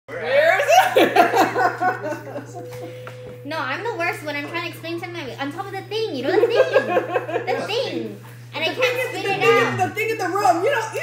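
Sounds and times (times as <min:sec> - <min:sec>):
steady low hum: 0:00.1 - 0:11.0
loud laughter: 0:00.5 - 0:03.0.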